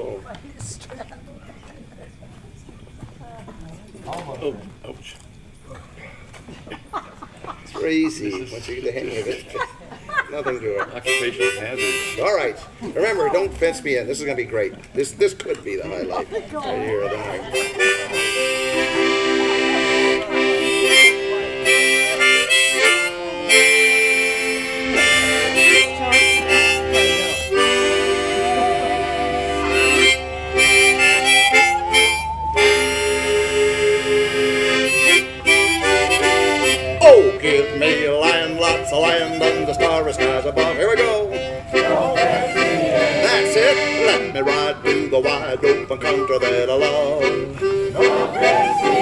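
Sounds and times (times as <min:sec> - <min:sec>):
harmonica: 0:11.0 - 0:12.5, 0:17.5 - 0:49.0
piano accordion: 0:11.0 - 0:12.5, 0:17.5 - 0:49.0
bowed musical saw melody: 0:17.6 - 0:46.4.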